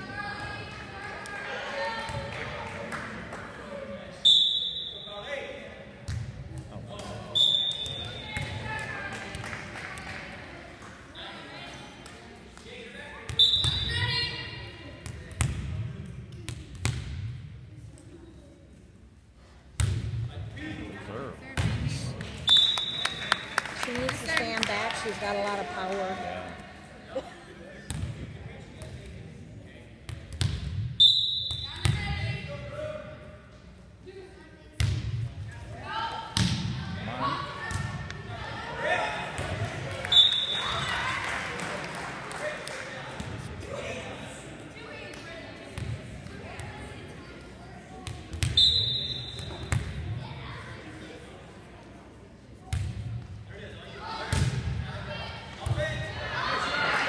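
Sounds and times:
referee's whistle blasts: 4.2 - 5.2, 7.3 - 8.3, 13.4 - 14.0, 22.4 - 23.5, 31.0 - 31.8, 40.0 - 40.8, 48.5 - 49.6
volleyball smacks and bounces: 36.4 - 36.8.

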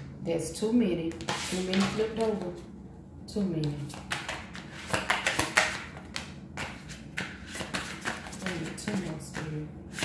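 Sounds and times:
cards being shuffled: 3.8 - 10.0.

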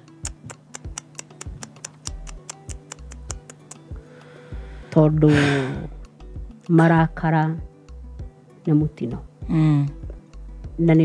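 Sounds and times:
background music with ticking beat: 0.0 - 11.0.

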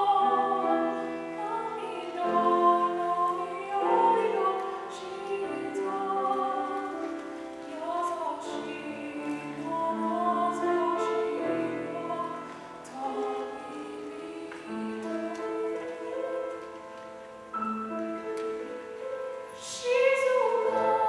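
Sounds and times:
woman singing slow song: 0.0 - 16.8, 19.5 - 21.0
grand piano: 0.0 - 21.0.

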